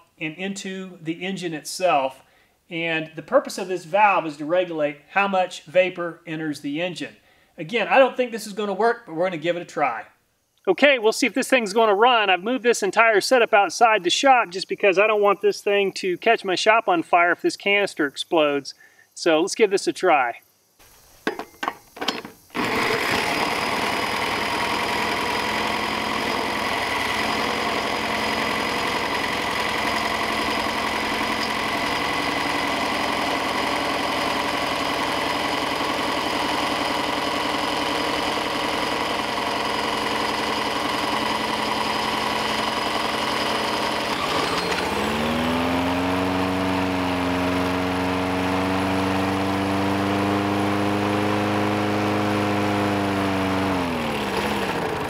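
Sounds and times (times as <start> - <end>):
small engine cranking over: 21.3 - 55.0
cordless drill whining: 22.0 - 55.0
small engine running: 22.1 - 55.0.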